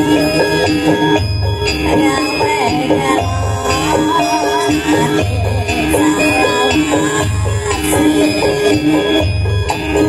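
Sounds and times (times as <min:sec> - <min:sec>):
live band melody over deep beat: 0:00.0 - 0:10.0.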